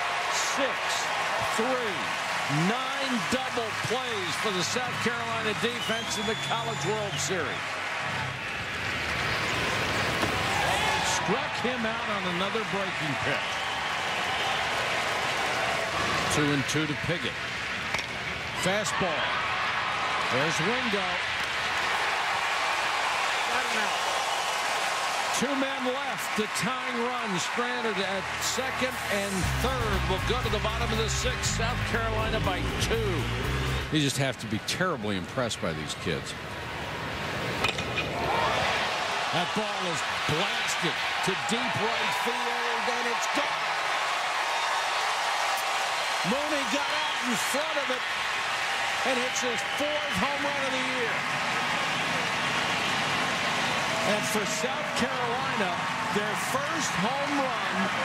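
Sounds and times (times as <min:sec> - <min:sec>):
stadium crowd cheering: 0:00.0 - 0:58.0
baseball bat crack: 0:10.1 - 0:10.5.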